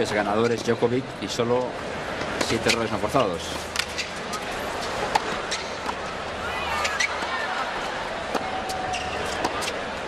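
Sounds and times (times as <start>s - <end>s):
crowd murmur: 4.4s - 10.0s.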